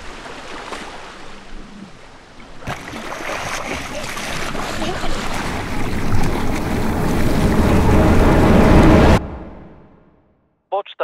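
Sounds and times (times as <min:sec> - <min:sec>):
sea water splashing and churning: 0:00.0 - 0:09.2.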